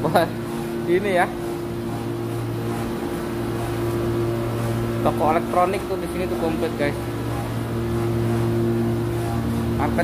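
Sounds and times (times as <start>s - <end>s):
low mechanical hum with tones: 0.0s - 10.0s.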